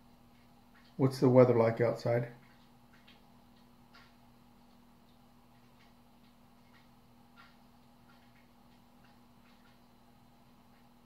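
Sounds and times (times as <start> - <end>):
faint irregular ticks: 0.0 - 11.0
low steady hum: 0.0 - 11.0.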